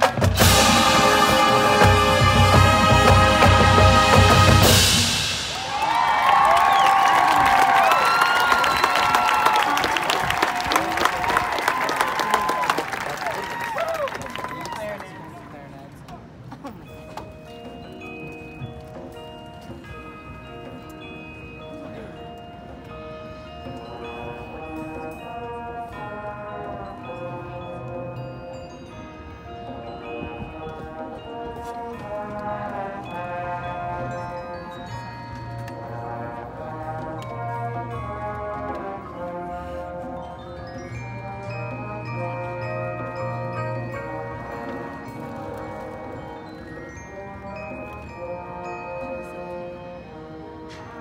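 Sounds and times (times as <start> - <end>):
marching band sustained chords: 0.0 - 11.4, 16.4 - 51.0
crowd cheering and whooping: 5.5 - 15.3
crowd clapping: 5.6 - 15.3
bell-like mallet percussion: 16.5 - 51.0.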